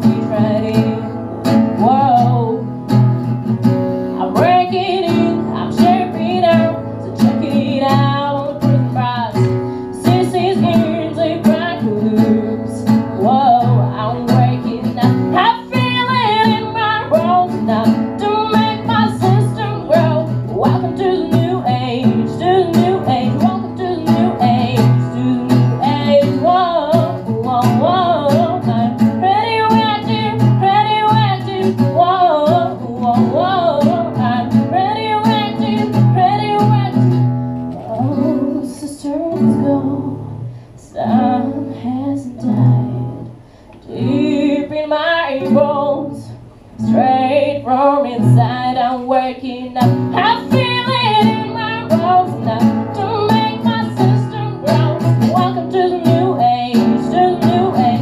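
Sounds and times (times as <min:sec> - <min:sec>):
woman singing into microphone: 0:00.0 - 0:03.4, 0:04.1 - 0:58.0
acoustic guitar strumming: 0:00.0 - 0:58.0.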